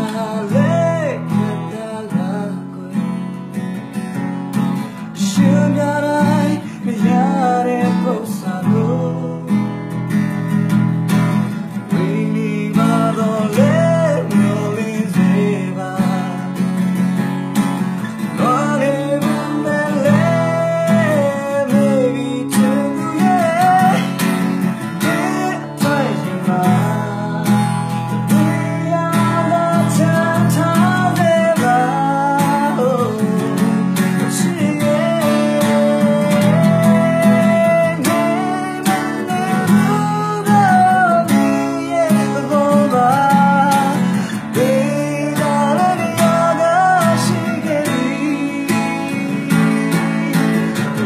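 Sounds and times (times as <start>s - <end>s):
man singing: 0.0s - 3.7s, 4.8s - 9.9s, 11.6s - 51.0s
strummed acoustic guitar: 0.0s - 51.0s.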